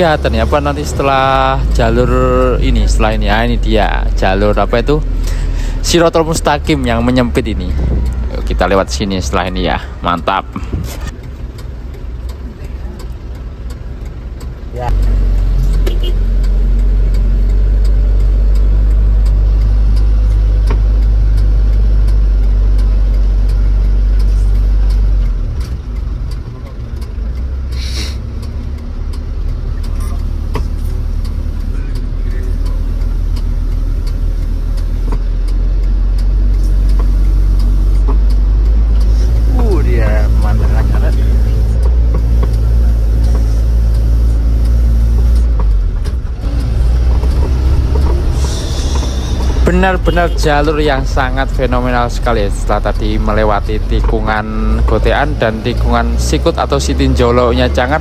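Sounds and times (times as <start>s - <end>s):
diesel engine drone in cabin: 0.0s - 58.0s.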